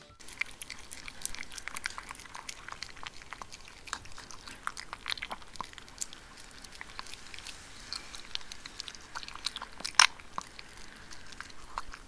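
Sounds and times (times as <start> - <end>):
dog chewing wetly: 0.2 - 12.0.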